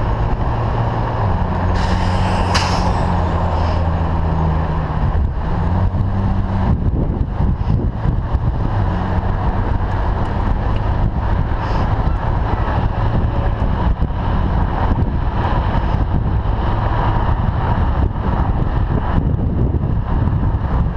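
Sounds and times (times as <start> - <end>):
car engine humming: 0.0 - 19.0
road noise: 0.0 - 20.9
wind rumbling on microphone: 0.0 - 20.9.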